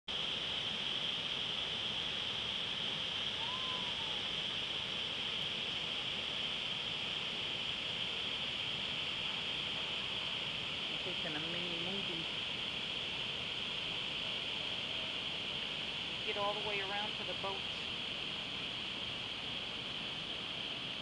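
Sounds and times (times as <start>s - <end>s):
water pouring over a dam: 0.1s - 21.0s
faint whistled note: 3.4s - 4.2s.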